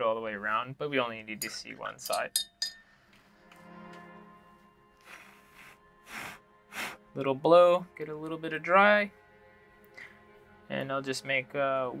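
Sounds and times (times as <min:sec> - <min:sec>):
soft background music: 0:00.0 - 0:12.0
short puffs of breath: 0:05.0 - 0:07.0.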